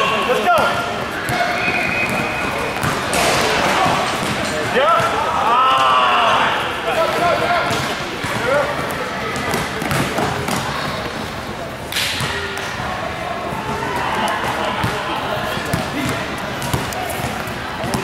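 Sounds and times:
players' voices: 0.0s - 18.0s
spectators' voices: 0.0s - 18.0s.

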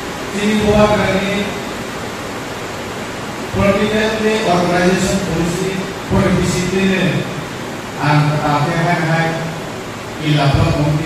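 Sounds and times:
steady hiss: 0.0s - 11.0s
man's voice: 0.4s - 1.6s, 3.6s - 7.3s, 8.0s - 9.5s, 10.2s - 11.0s.

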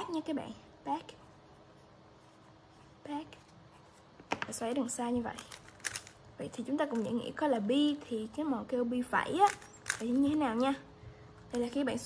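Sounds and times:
pen scratching on paper: 1.1s - 4.1s.

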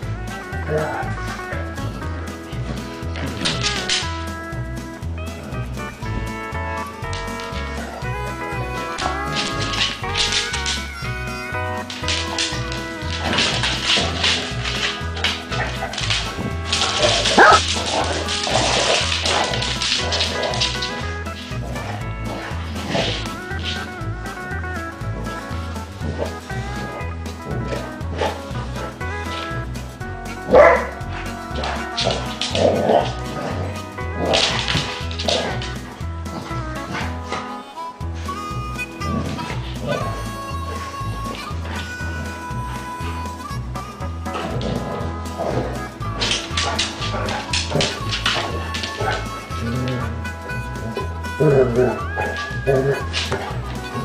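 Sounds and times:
dogs barking in play: 0.0s - 4.2s, 5.3s - 54.0s
background music with steady beat: 0.0s - 54.0s.

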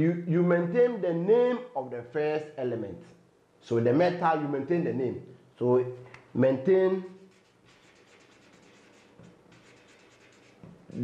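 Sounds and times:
marker writing on paper: 7.2s - 11.0s.

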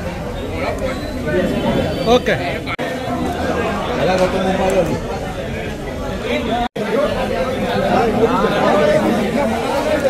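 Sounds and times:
men chattering: 0.0s - 10.0s.

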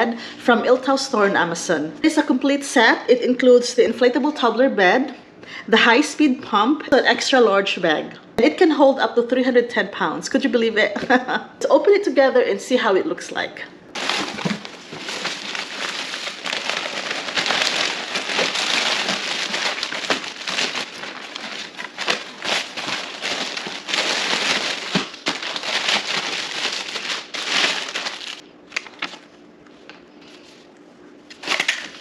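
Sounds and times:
plastic packaging rustling: 14.0s - 29.3s, 31.3s - 32.0s.

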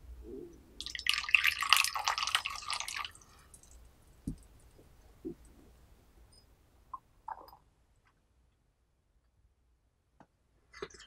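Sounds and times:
tea pouring into a cup: 0.8s - 3.8s.

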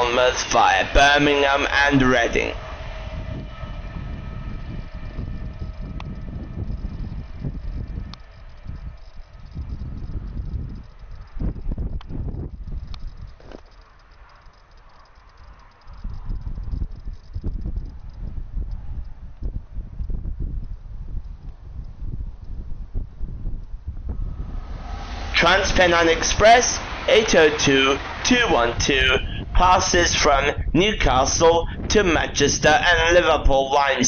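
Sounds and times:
diesel train engine hum: 0.0s - 19.9s, 23.8s - 34.0s
wind rumble on microphone: 0.0s - 34.0s.

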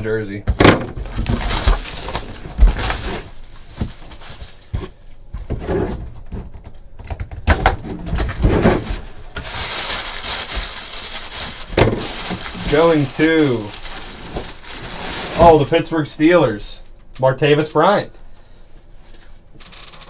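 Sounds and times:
crinkling wrapping material: 1.0s - 5.2s, 8.1s - 16.0s.

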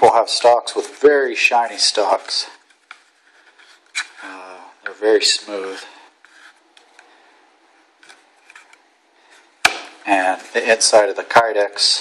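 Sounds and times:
sharp knock: 9.6s - 10.0s.

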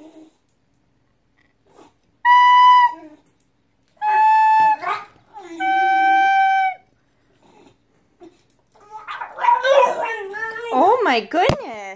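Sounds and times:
recorder playing: 2.2s - 3.1s, 4.0s - 6.9s
dog whining: 4.0s - 6.8s, 7.4s - 11.0s.

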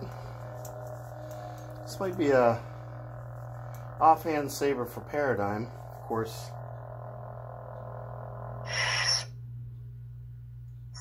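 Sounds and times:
lightsaber hum: 0.0s - 11.0s.

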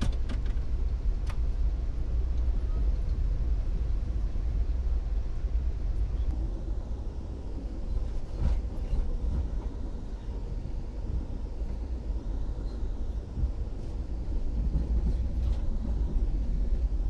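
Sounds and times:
train rumbling on rails: 0.0s - 17.0s.

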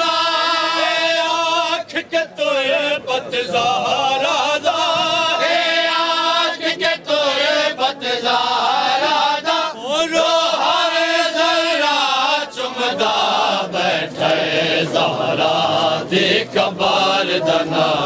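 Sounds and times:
men chanting a lament: 0.0s - 18.0s.

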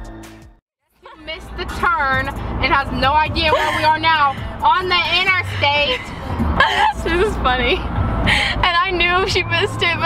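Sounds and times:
car road rumble: 0.9s - 10.0s
young women's voices: 1.0s - 7.9s, 8.5s - 10.0s.

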